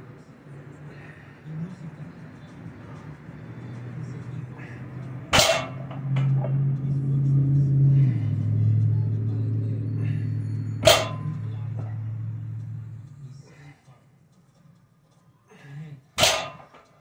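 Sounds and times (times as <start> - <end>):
steady low hum: 4.0 - 14.7.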